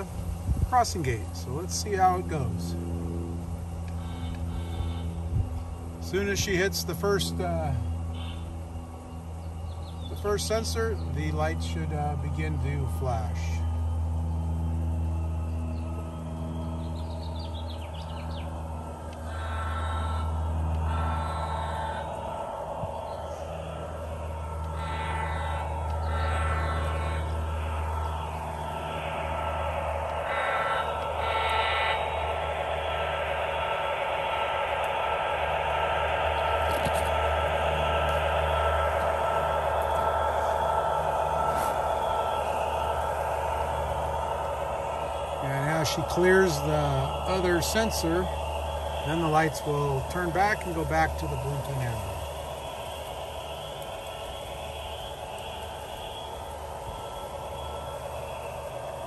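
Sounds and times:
model train motor hum: 0:00.0 - 0:59.0.

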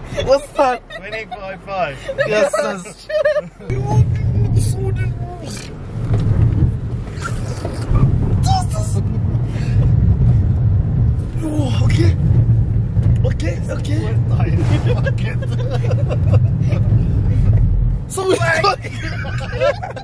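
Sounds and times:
car engine and road noise: 0:00.0 - 0:20.0
people talking: 0:00.2 - 0:05.7, 0:08.4 - 0:09.2, 0:13.2 - 0:16.2, 0:18.1 - 0:20.0
people laughing: 0:00.4 - 0:03.7, 0:14.8 - 0:17.0, 0:18.7 - 0:20.0.

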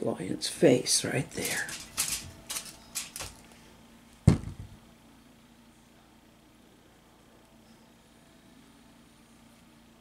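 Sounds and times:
clay and tools tapping: 0:01.4 - 0:03.4
clay thumping on mat: 0:04.2 - 0:04.8.

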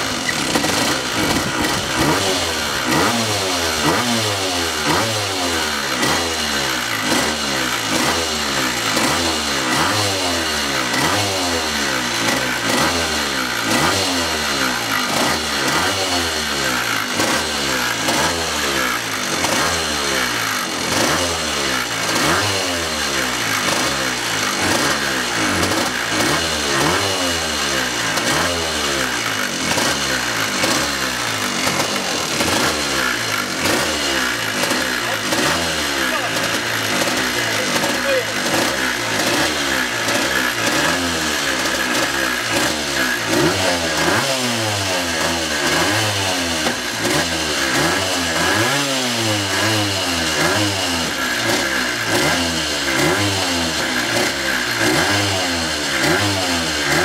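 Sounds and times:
two-stroke kart engine revving: 0:00.0 - 0:57.0.

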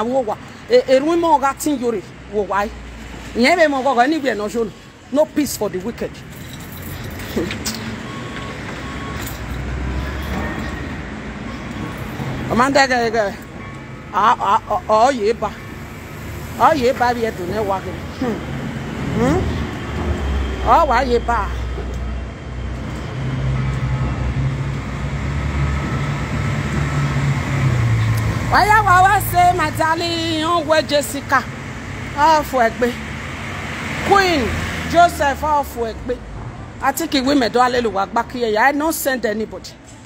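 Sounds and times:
street noise: 0:00.0 - 0:40.0
vehicle engine rumble: 0:02.0 - 0:35.1.

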